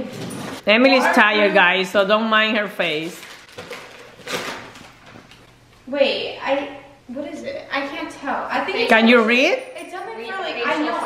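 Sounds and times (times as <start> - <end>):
wrapping paper tearing: 2.9 - 5.5
paper crinkling and rustling: 2.9 - 5.6.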